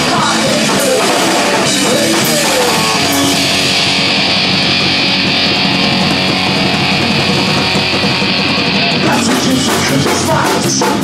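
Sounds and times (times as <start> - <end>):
bass guitar: 0.0 - 11.0
distorted electric guitar: 0.0 - 11.0
drums: 0.0 - 11.0.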